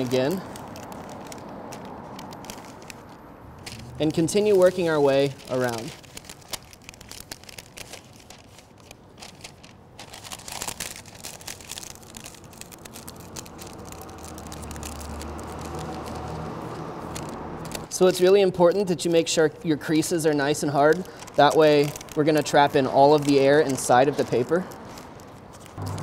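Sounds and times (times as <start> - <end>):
parchment paper crinkling: 0.0 - 26.0.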